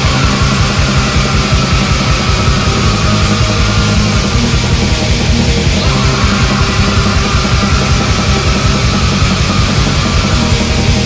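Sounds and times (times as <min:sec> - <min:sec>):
heavy doom rock band music: 0:00.0 - 0:11.0.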